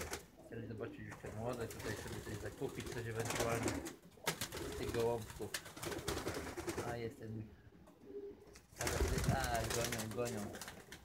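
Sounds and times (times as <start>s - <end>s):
pigeons cooing: 5.8s - 9.4s.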